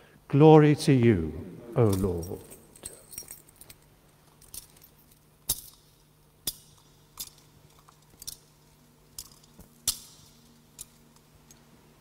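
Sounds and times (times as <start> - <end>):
censer chains clinking: 1.8 - 11.3.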